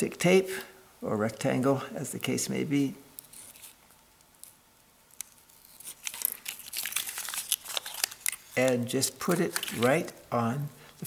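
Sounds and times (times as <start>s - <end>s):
tape peeling crackles: 3.2s - 10.2s.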